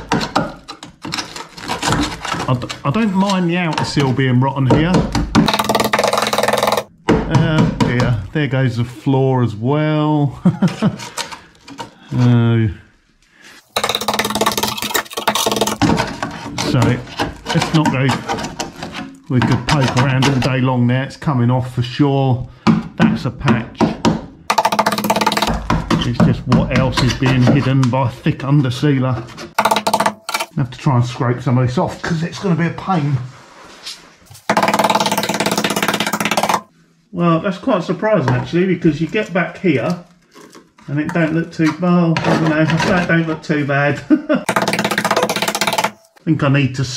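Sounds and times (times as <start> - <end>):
laugh-like vocal sound: 10.2 - 11.4, 44.0 - 44.5
screwdriver scraping metal: 13.6 - 17.6.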